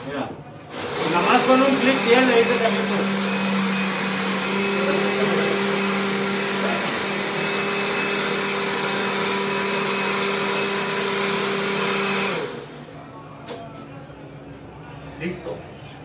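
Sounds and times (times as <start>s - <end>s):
blender running: 0.7s - 12.9s.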